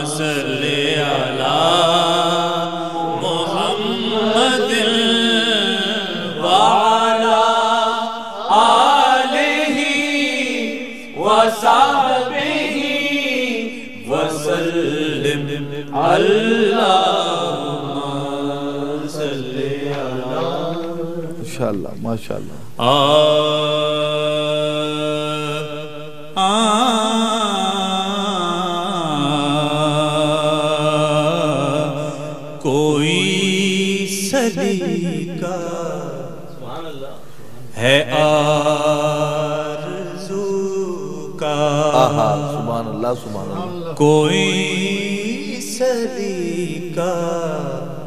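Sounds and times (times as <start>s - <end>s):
man singing ornamented phrases: 0.0s - 22.1s, 22.8s - 36.8s, 37.6s - 48.0s.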